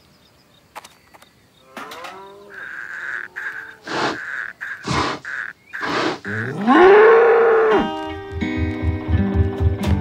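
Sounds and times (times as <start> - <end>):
cartoon bull mooing: 1.6 - 8.0
cartoon bull breathy bursts: 3.8 - 4.2, 4.8 - 6.4.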